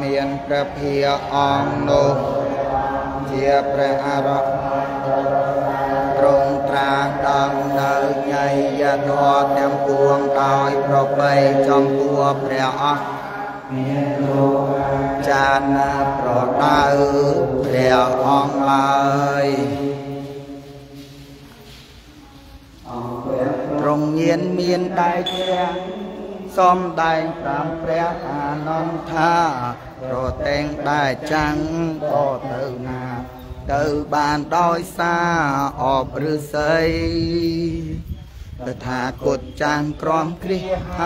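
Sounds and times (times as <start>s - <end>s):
monks chanting: 0.0s - 38.0s, 38.6s - 41.0s.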